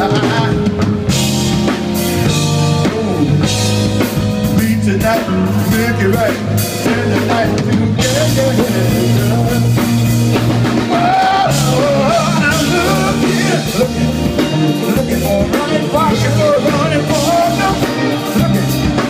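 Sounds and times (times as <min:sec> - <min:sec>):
drum kit: 0:00.0 - 0:19.0
electric bass: 0:00.0 - 0:19.0
electric guitar lead line: 0:00.0 - 0:19.0.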